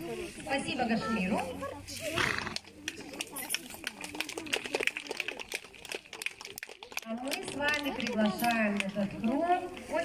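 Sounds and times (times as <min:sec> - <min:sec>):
crowd chatter: 0:00.0 - 0:10.0.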